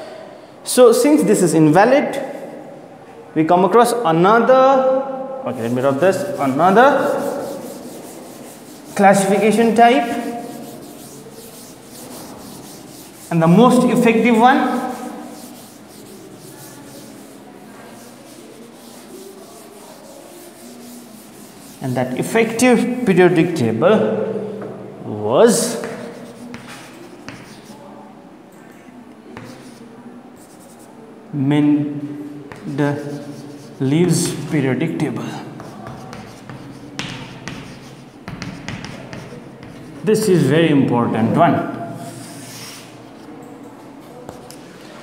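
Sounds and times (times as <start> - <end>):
chalk scratching on chalkboard: 5.5 - 22.6, 25.5 - 27.8, 29.4 - 31.0, 32.5 - 34.6, 35.5 - 40.5, 42.0 - 43.3, 44.1 - 44.6
duster rubbing on blackboard: 5.5 - 22.6, 25.7 - 27.8, 29.4 - 30.8, 32.5 - 34.5, 35.6 - 40.1
chalk tapping on chalkboard: 5.6 - 22.6, 25.7 - 27.8, 29.4 - 30.8, 32.5 - 34.5, 35.6 - 40.1, 44.3 - 44.6.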